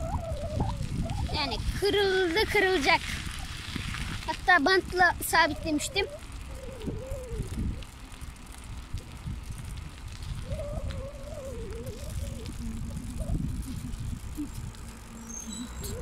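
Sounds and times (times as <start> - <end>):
bicycle rattling: 0.0 - 16.0
wind and road rumble: 0.0 - 16.0
brief wavering hum: 10.2 - 16.0.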